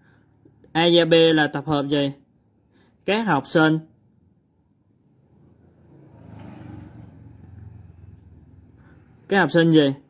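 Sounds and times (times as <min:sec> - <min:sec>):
passing motor vehicle rumble: 0:05.0 - 0:09.3.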